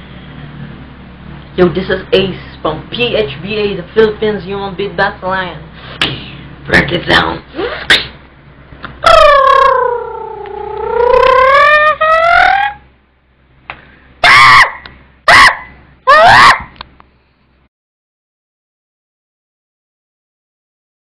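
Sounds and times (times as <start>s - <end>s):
beatboxer siren-like tone: 9.1s - 12.9s.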